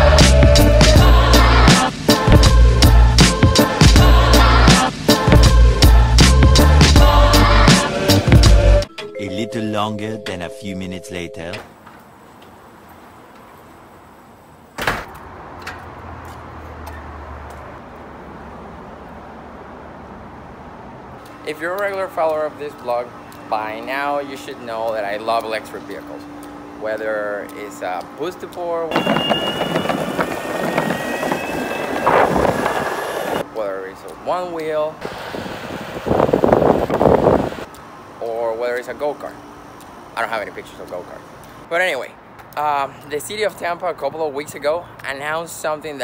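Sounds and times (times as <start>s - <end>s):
wind buffeting microphone: 28.9s - 33.4s, 35.0s - 37.6s.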